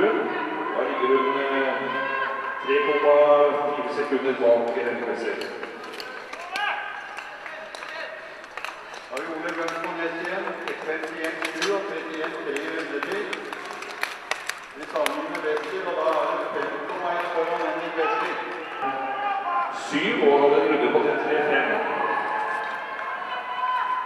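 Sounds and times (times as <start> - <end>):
man talking: 2.6 - 5.6, 9.1 - 13.4, 14.8 - 22.3.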